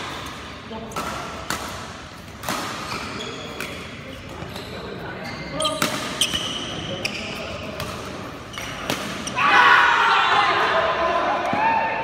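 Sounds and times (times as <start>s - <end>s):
shoes squeaking on court floor: 2.3s - 9.4s
loud voices: 9.2s - 12.0s.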